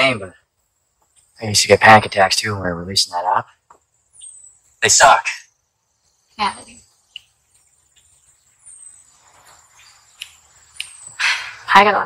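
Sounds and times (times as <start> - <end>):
insects: 0.0 - 12.0.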